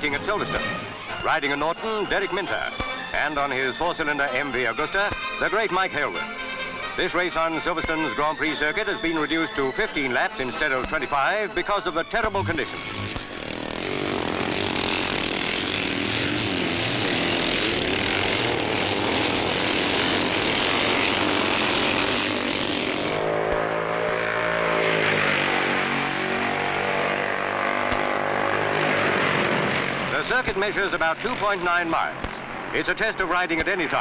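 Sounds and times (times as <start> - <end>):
racing motorcycles at full throttle: 12.1 - 32.8.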